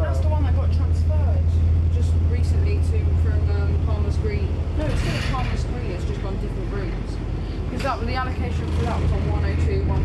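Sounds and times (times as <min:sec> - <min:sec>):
bus engine drone: 0:00.0 - 0:10.0
people talking: 0:00.0 - 0:10.0.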